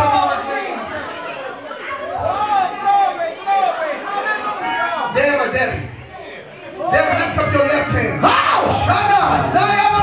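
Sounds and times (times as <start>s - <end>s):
preacher speaking over loudspeakers: 0.0s - 1.0s, 2.2s - 10.0s
congregation chatter: 0.0s - 10.0s.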